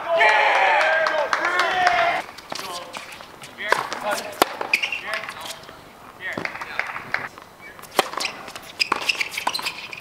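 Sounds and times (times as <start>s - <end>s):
tennis racket hitting ball: 2.5s - 5.6s, 6.3s - 10.0s.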